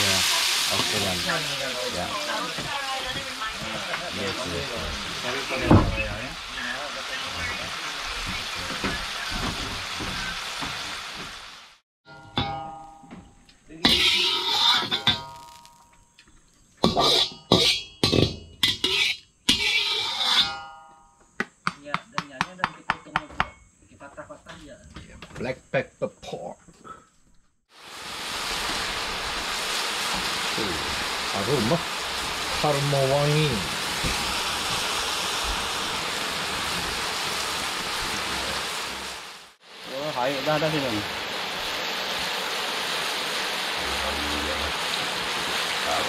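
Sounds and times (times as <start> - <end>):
chicken sizzling in hot oil: 0.0 - 11.8, 13.8 - 15.8, 16.8 - 20.5, 27.7 - 46.0.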